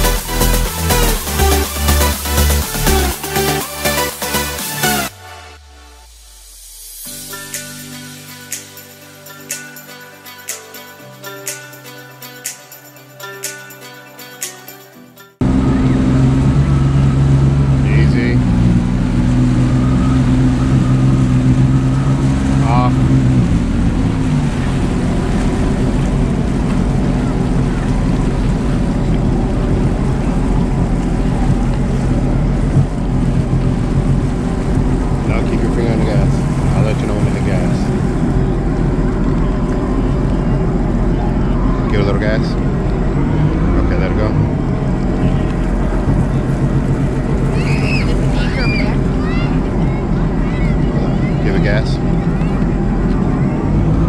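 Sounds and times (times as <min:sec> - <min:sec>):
jet ski engine running: 0:00.0 - 0:09.4, 0:15.4 - 0:54.0
water rushing and splashing: 0:00.0 - 0:11.9, 0:15.4 - 0:54.0.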